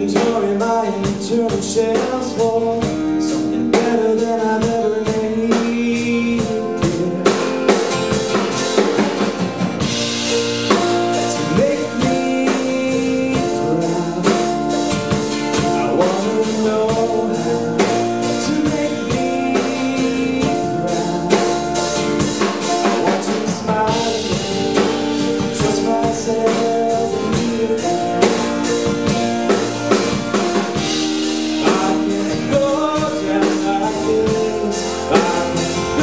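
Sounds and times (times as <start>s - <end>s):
drum kit beat: 0.0s - 36.0s
man singing: 0.0s - 36.0s
strummed acoustic guitar: 0.0s - 36.0s.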